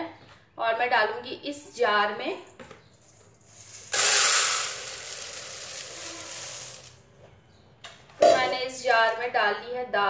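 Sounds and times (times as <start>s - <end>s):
lentils pouring into plastic jar: 3.4s - 7.0s.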